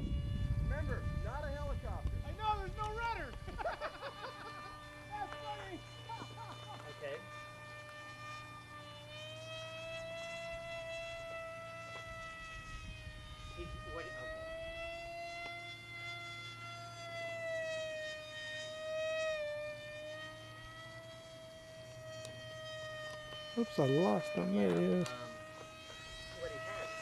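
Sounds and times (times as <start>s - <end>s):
model plane motor whining: 0.0s - 27.0s.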